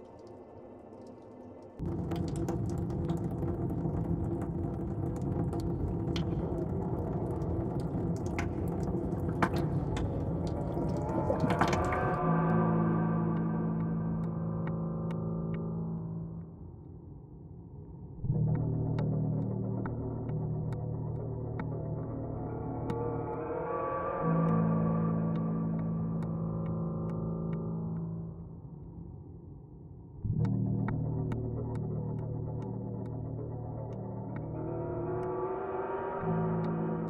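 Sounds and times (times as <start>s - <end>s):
synthesized drone: 1.8s - 16.5s, 18.2s - 28.4s, 30.3s - 37.0s
rising synth tones: 33.2s - 37.0s.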